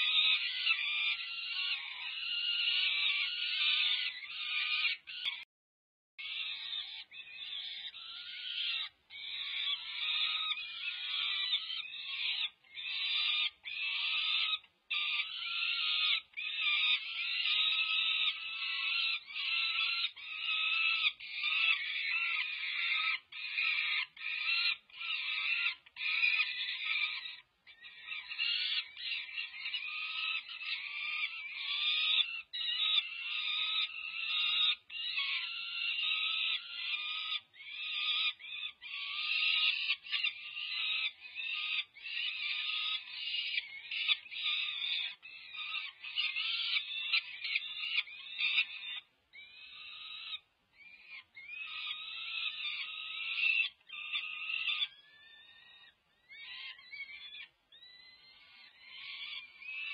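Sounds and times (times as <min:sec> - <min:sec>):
falcon chicks begging screams: 0:00.0 - 0:05.4, 0:06.2 - 0:59.9.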